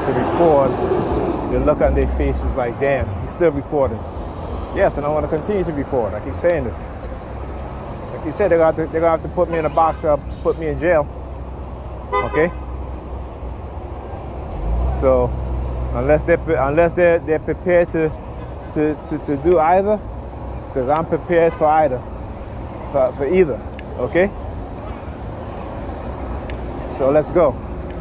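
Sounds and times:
street traffic engine rumble: 0.0 - 28.0.

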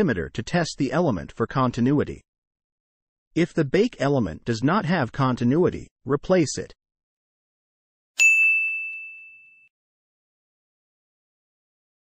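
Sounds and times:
bell-like chime ding: 8.2 - 9.7.

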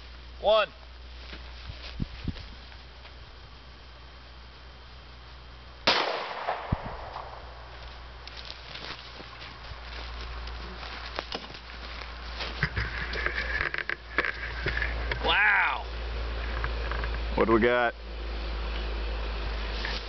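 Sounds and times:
handgun shot with echo: 5.9 - 7.4.

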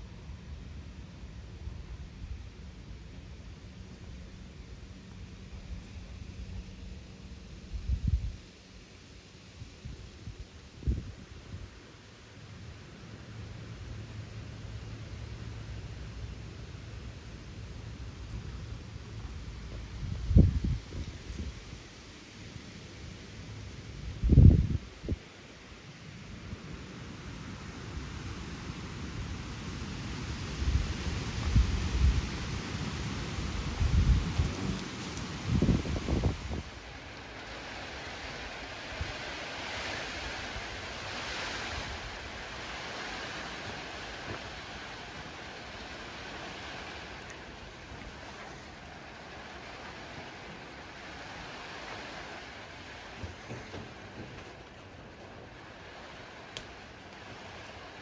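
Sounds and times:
wind buffeting microphone: 9.7 - 11.8, 19.7 - 21.9, 24.0 - 25.2, 30.3 - 58.0.

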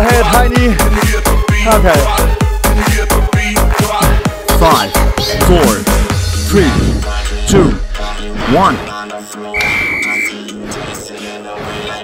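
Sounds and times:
electronic dance music: 0.0 - 12.0
high-pitched timer beep: 9.6 - 10.4.

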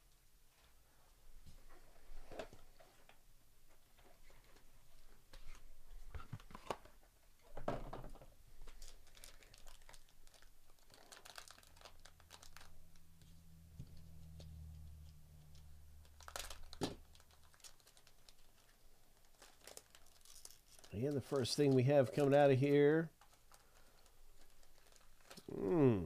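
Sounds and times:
foil wrapper crinkling: 8.6 - 25.8.

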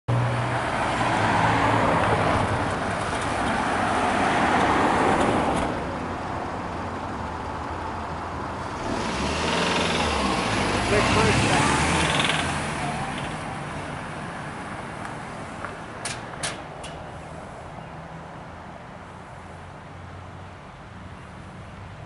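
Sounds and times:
road traffic noise: 0.1 - 22.0.

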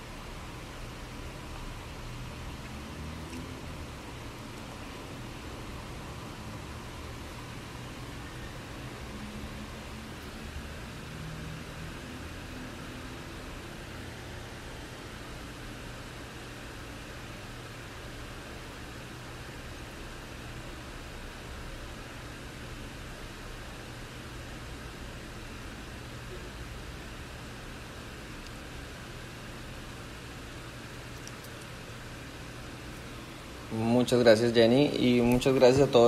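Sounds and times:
faint low hum: 0.0 - 36.0
microphone hiss: 0.0 - 36.0.

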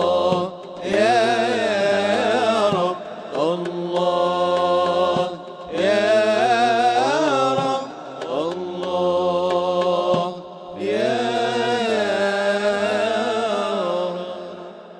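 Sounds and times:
men singing chant-like notes: 0.0 - 14.9.

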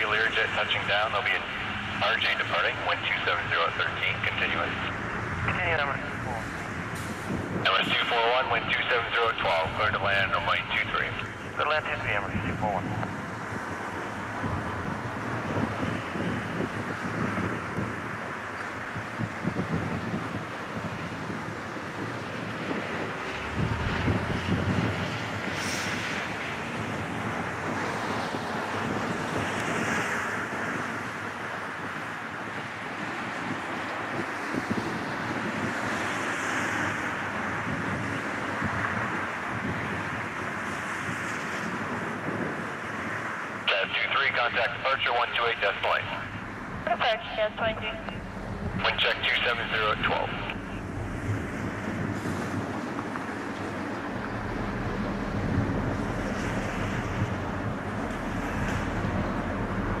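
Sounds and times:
distant jet engines: 0.0 - 60.0
wind rushing over microphone: 0.0 - 60.0.

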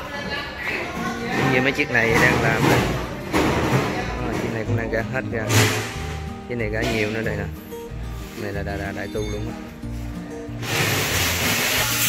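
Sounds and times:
background music with bass line: 4.1 - 12.0.

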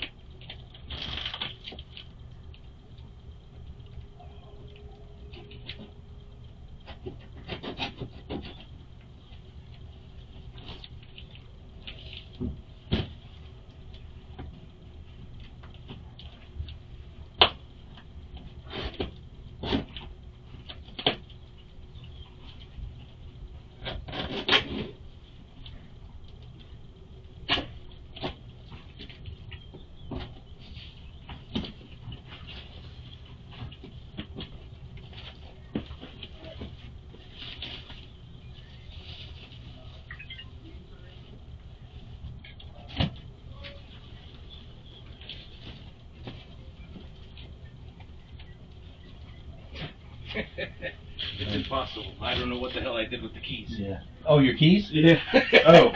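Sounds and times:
plastic mailer bags crinkling: 0.3 - 2.4
cardboard boxes rustling and knocking: 12.3 - 13.4.

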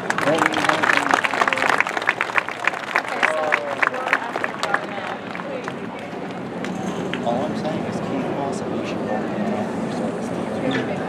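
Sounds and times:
crowd applauding and cheering: 0.0 - 7.3.

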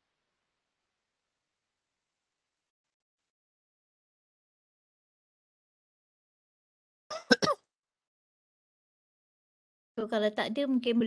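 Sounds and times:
person clearing throat: 7.1 - 7.6.

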